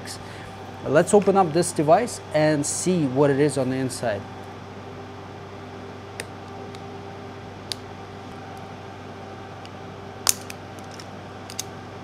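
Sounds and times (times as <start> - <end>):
steady background hum: 0.0 - 12.0
metal shell clicking and snapping: 10.2 - 11.7.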